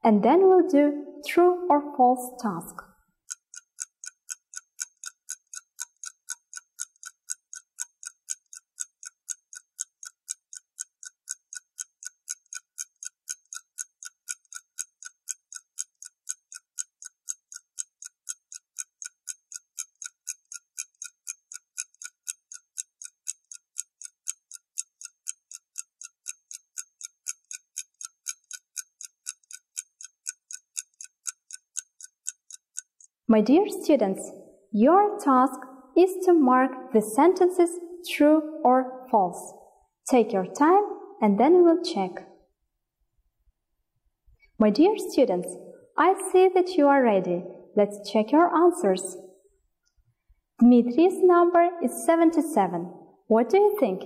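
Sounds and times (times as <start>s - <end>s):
clock ticking: 0.3s - 41.3s, 44.4s - 46.5s, 50.6s - 54.0s.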